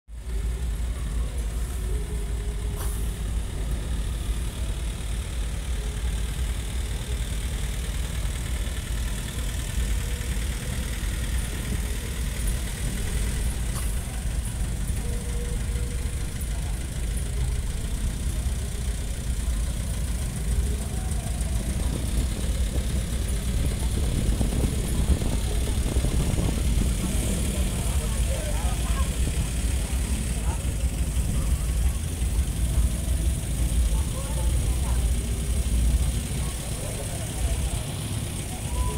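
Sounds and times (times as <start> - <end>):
faint voices: 0.1 - 38.9
vehicle engines rumbling: 0.1 - 38.9.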